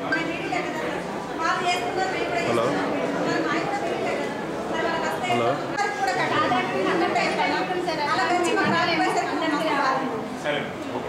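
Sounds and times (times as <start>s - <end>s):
people talking at once: 0.0s - 11.0s
woman's voice: 3.3s - 10.1s.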